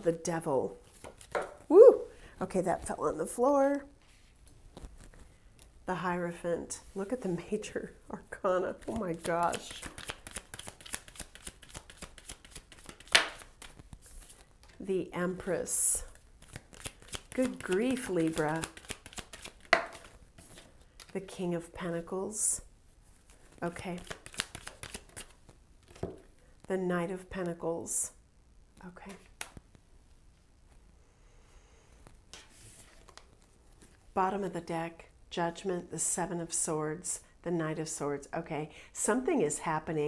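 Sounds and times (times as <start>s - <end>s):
cards being shuffled: 0.8s - 1.8s, 4.0s - 5.7s, 8.6s - 14.8s, 16.0s - 21.3s, 23.1s - 26.4s, 29.1s - 29.8s, 32.0s - 34.0s
cards snapping: 8.9s - 14.4s, 16.4s - 20.2s, 24.0s - 26.0s.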